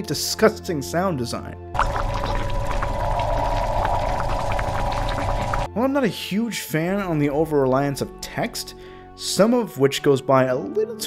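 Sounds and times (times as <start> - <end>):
dense low drone: 1.8 - 5.7.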